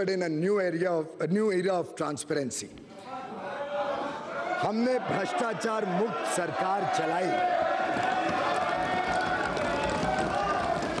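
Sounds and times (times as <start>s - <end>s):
crowd calling out: 3.2s - 11.0s.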